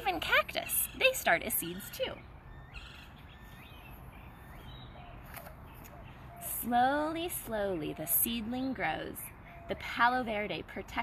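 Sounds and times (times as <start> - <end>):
outdoor background noise: 0.0 - 11.0
faint bird chirps: 0.7 - 6.7.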